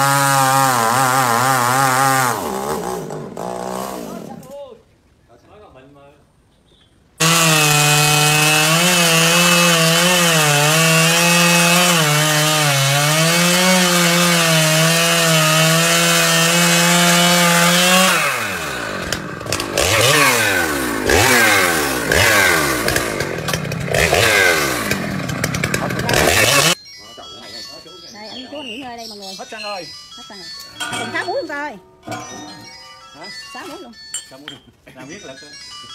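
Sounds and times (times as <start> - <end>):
chainsaw cutting at high revs: 0.0 - 4.4, 7.2 - 26.8.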